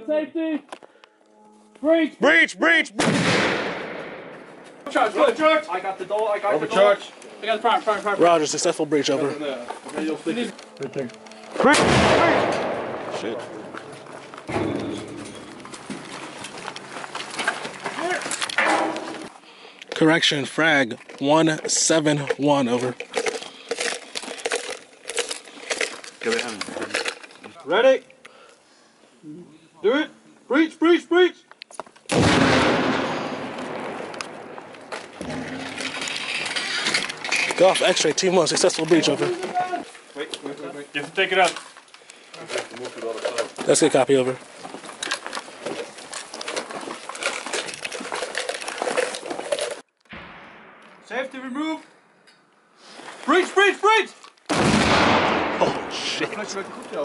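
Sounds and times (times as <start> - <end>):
explosive blast: 3.0 - 4.6, 11.7 - 13.6, 32.1 - 35.8, 50.1 - 51.5, 54.5 - 56.3.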